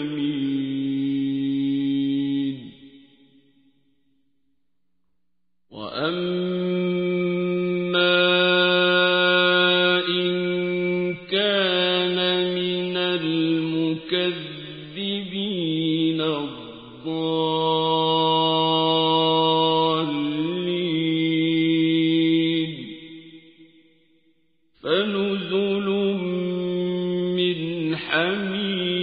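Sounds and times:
man chanting verse: 0:05.7 - 0:23.1, 0:24.8 - 0:29.0.

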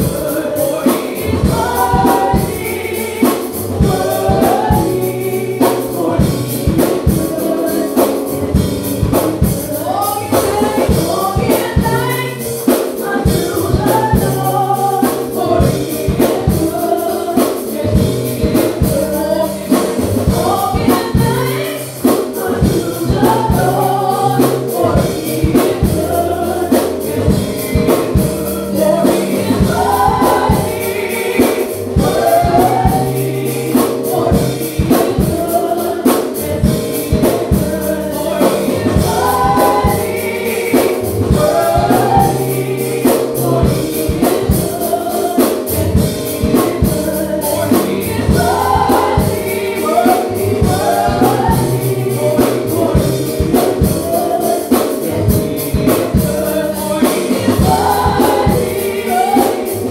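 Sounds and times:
drum kit beat: 0:00.0 - 0:59.9
organ and keyboard: 0:00.0 - 0:59.9
woman singing: 0:09.5 - 0:33.4.

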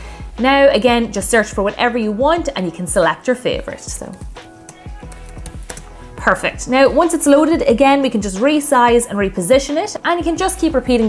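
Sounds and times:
background music: 0:00.0 - 0:11.0
laptop keyboard typing: 0:04.6 - 0:05.9.

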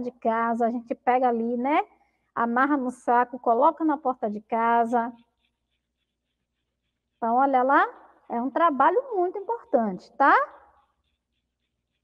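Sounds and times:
woman speaking: 0:00.0 - 0:05.2, 0:07.2 - 0:10.7.

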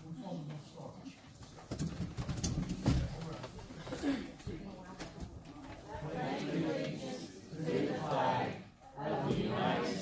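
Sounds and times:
murmur of voices: 0:03.0 - 0:10.0.

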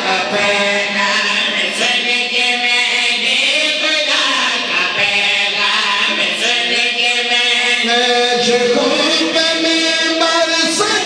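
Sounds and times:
men chanting in unison: 0:00.0 - 0:11.0.

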